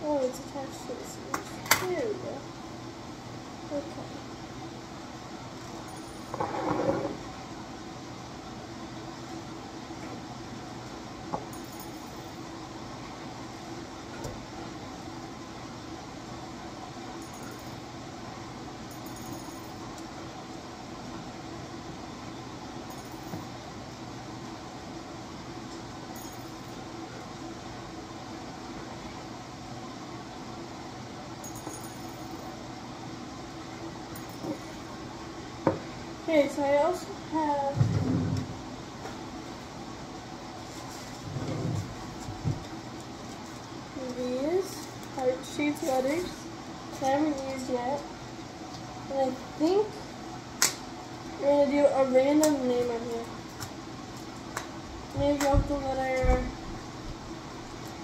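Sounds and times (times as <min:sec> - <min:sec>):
low background hum: 0:00.0 - 0:58.0.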